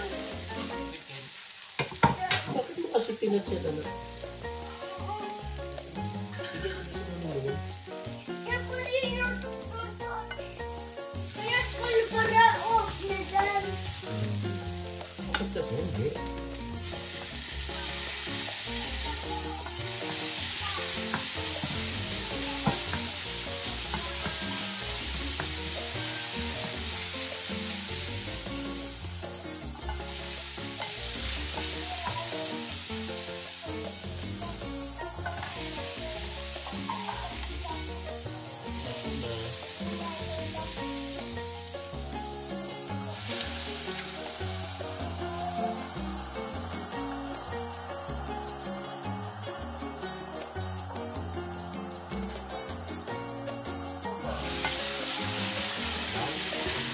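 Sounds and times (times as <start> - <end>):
vegetables sizzling in skillet: 0.0 - 56.9.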